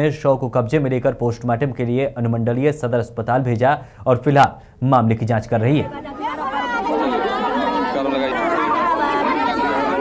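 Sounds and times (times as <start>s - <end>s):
women wailing and crying: 5.8s - 10.0s.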